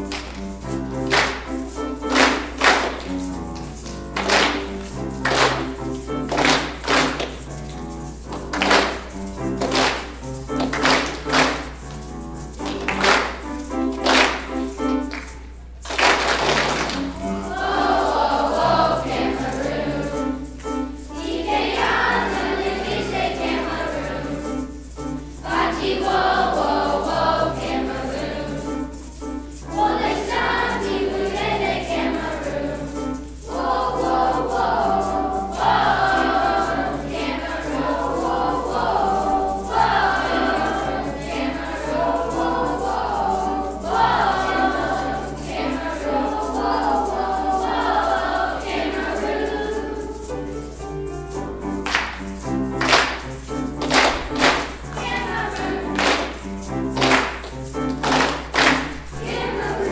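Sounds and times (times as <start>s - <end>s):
children's choir singing: 0.0s - 59.9s
grand piano accompaniment: 0.0s - 59.9s.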